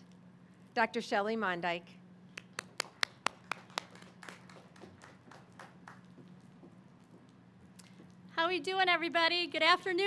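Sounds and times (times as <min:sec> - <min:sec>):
hand clapping: 0:02.3 - 0:06.2.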